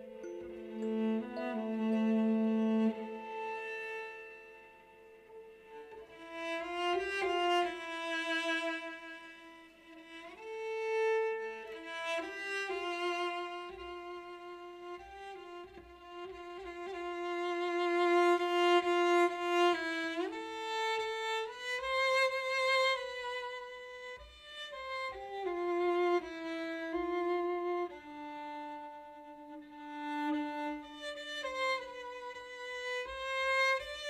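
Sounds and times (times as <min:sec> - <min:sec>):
bowed cello notes: 0:00.0 - 0:34.0.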